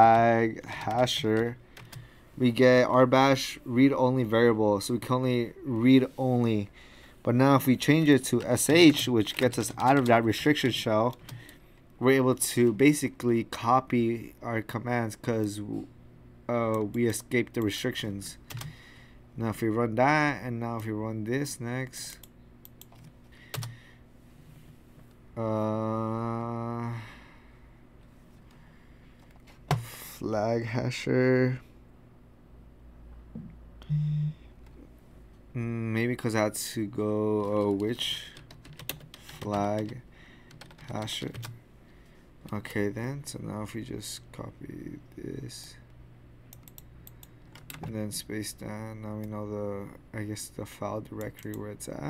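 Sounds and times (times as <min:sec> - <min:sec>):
computer keyboard keystrokes: 0:08.3 - 0:10.2, 0:18.5 - 0:18.7, 0:22.2 - 0:23.7, 0:37.4 - 0:41.6, 0:46.5 - 0:48.0.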